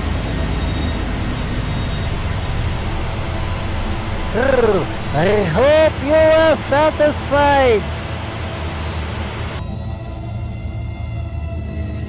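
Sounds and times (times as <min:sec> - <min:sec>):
television static hiss: 0:00.0 - 0:09.6
low hum: 0:00.0 - 0:11.4
steady buzzing drone: 0:00.0 - 0:12.0.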